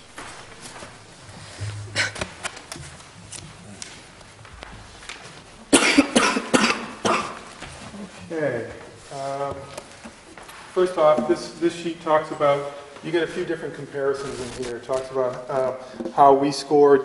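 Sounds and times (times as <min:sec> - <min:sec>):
man coughing: 0:01.6 - 0:02.4, 0:05.7 - 0:07.4.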